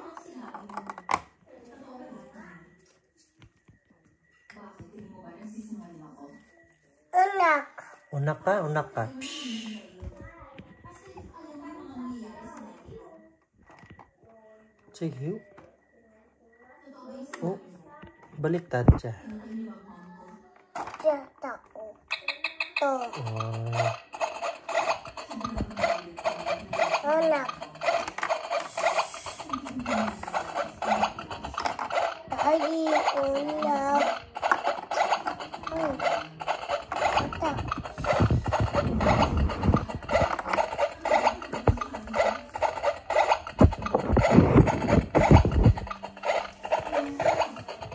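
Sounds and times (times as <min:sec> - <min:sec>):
electronic toy music: 0:22.1 - 0:47.9
plastic toy pieces scraping: 0:22.1 - 0:47.9.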